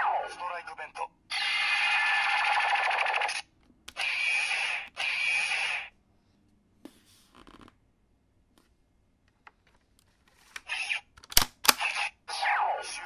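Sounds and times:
toy electronic sound effects: 1.3s - 6.0s, 10.7s - 11.1s, 11.8s - 13.0s.

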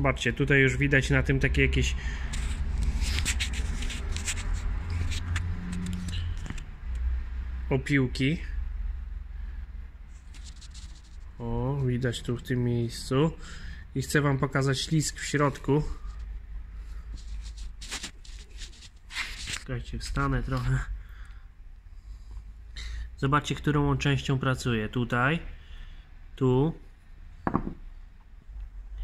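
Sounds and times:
hands rubbing metal part on rag: 2.4s - 6.1s, 10.2s - 11.4s, 16.9s - 20.7s
metal part rustling on towel: 16.9s - 19.7s.

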